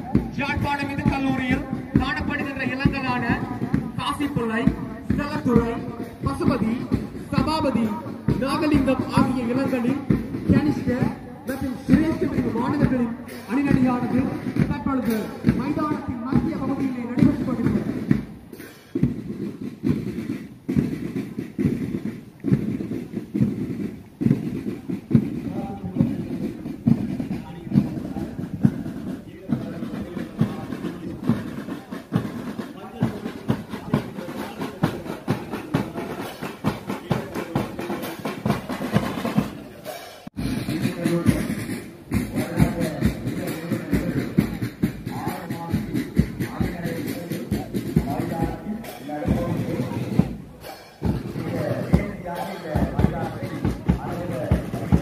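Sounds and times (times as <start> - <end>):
marching band drums: 0.0 - 55.0.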